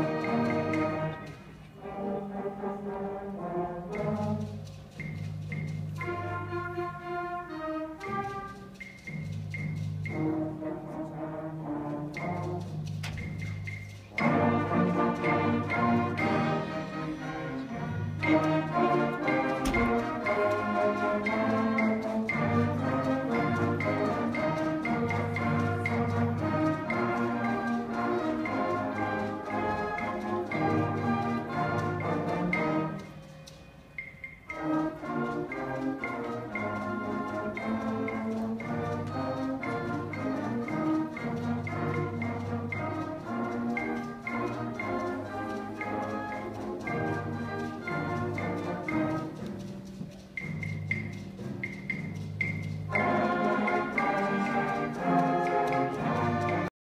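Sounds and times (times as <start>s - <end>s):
concert band playing: 0.0s - 56.7s.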